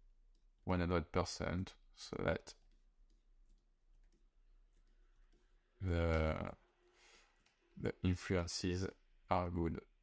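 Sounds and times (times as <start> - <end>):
computer mouse clicks: 2.6 - 5.5.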